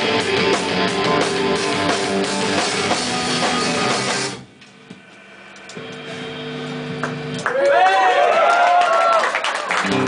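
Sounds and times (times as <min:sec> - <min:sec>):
amp hum: 0:00.0 - 0:08.9.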